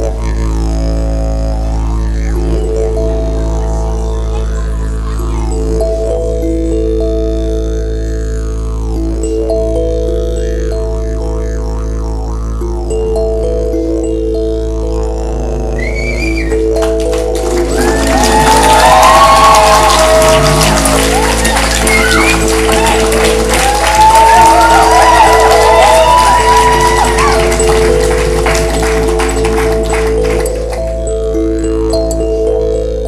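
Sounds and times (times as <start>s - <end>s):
low drone with held notes: 0.0s - 33.0s
audience cheering and clapping: 15.8s - 31.0s.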